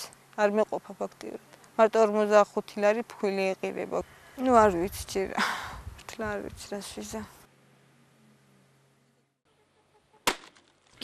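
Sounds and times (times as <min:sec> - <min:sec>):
hatchet chopping kindling on wood: 0:10.3 - 0:10.6.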